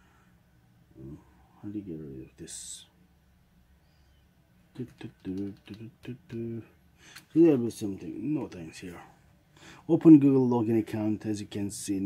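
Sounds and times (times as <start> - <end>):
sharp clicks: 4.8 - 6.4.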